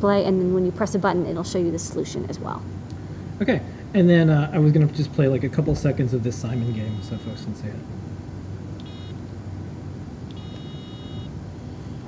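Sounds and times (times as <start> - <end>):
electronic beeps: 6.5 - 7.5, 8.8 - 9.2, 10.3 - 12.0.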